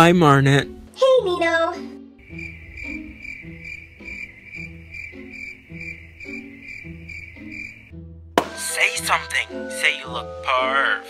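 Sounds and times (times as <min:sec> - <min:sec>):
soft background music: 0:00.0 - 0:11.0
cricket chirping: 0:02.2 - 0:07.9.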